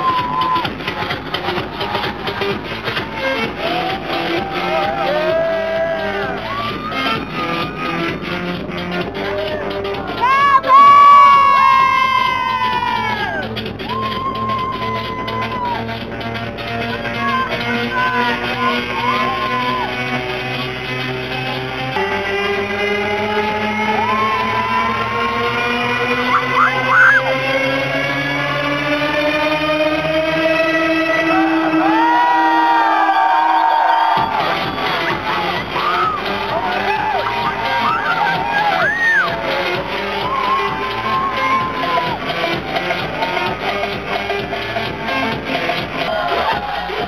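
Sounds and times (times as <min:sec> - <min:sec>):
crowd cheering: 0:00.0 - 0:16.1, 0:16.8 - 0:21.0, 0:22.0 - 0:47.0
electronic dance music: 0:00.0 - 0:47.0
loud high-pitched scream: 0:26.3 - 0:27.3, 0:37.2 - 0:39.3
second person screaming: 0:26.3 - 0:27.3.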